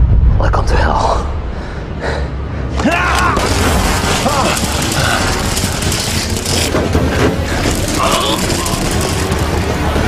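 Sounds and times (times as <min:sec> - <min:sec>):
heavy low rumble: 0:00.0 - 0:02.7
action film sound effects: 0:00.0 - 0:10.0.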